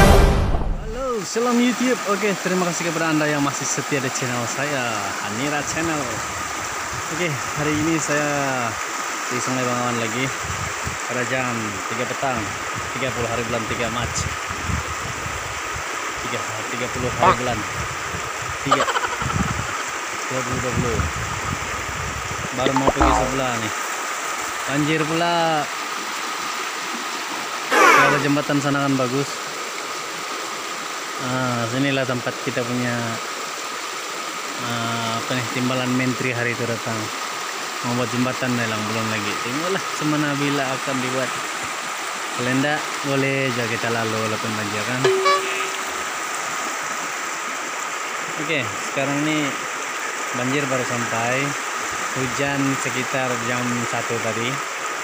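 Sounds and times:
low rumble: 0.0s - 1.0s
river water rushing: 22.8s - 28.7s, 45.0s - 51.0s.

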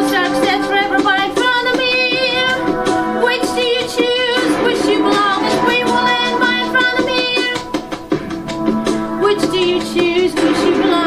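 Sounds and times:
woman singing: 0.0s - 7.8s, 9.2s - 11.0s
instrumental accompaniment: 0.0s - 11.0s.

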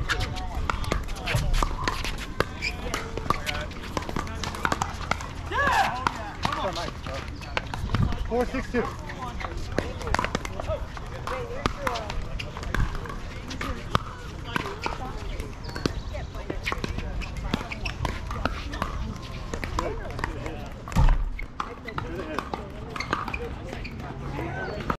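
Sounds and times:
indistinct voices chattering: 0.0s - 25.0s.

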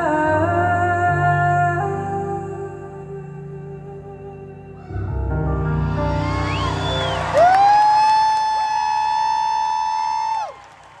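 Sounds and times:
faint crowd cheering: 5.5s - 11.0s
higher whistle: 5.6s - 10.7s
loud two-finger whistle: 6.2s - 8.3s.

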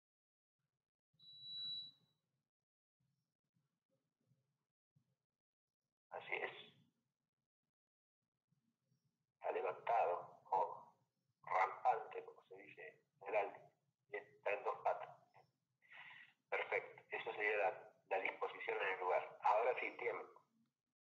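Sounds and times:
person talking: 6.1s - 6.7s, 9.4s - 10.7s, 11.5s - 13.6s, 14.4s - 15.0s, 16.6s - 20.2s.

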